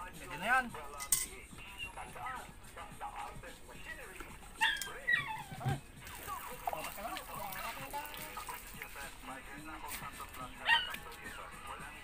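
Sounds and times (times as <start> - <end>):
small dog yelping: 4.6 - 5.8, 10.6 - 11.0.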